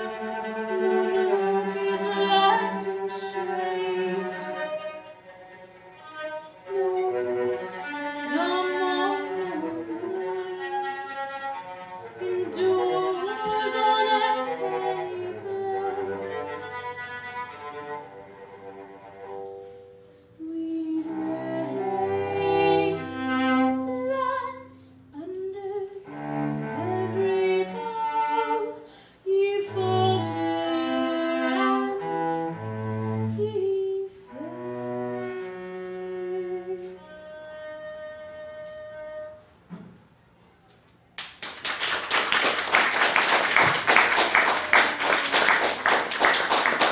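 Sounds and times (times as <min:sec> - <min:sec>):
solo cello bowed: 0:00.0 - 0:40.0.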